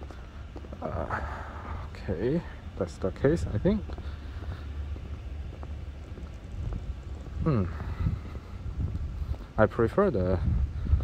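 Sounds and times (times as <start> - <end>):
wind rumble on microphone: 3.2 - 11.0
person humming hmm: 7.4 - 8.0.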